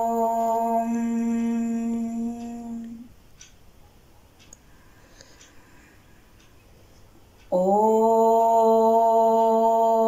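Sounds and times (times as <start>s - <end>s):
woman chanting om: 0.0s - 3.1s, 7.5s - 10.0s.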